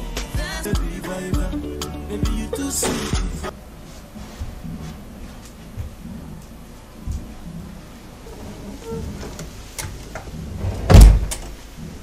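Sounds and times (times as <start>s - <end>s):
loud heavy thud: 10.6s - 11.3s.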